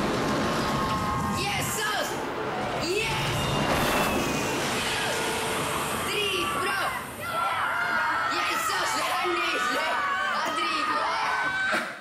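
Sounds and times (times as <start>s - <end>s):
train passing: 0.0s - 9.2s.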